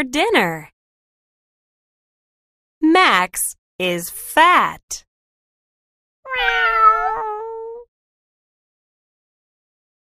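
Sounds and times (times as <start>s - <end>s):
cat meowing: 6.3s - 7.8s.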